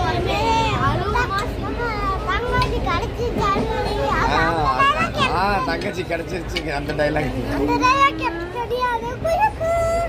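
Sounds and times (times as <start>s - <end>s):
children chattering and laughing: 0.0s - 10.0s.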